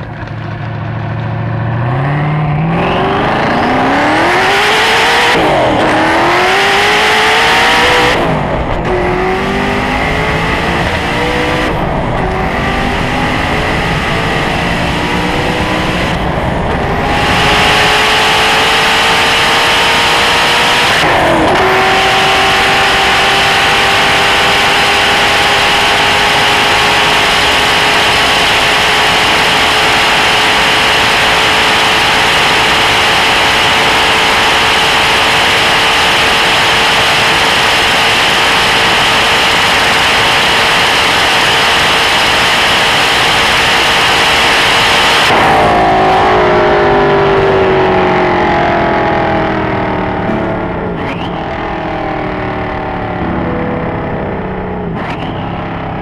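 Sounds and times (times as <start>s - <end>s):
car engine at full throttle: 0.0s - 56.0s
heavy rushing noise: 0.0s - 56.0s.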